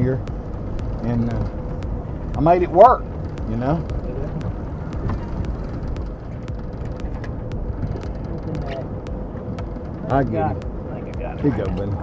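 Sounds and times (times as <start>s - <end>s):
wind and water rumble: 0.0s - 12.0s.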